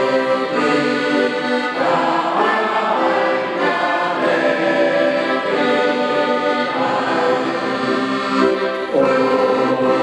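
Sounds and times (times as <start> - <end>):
accordion: 0.0 - 10.0
group of voices singing: 0.0 - 10.0.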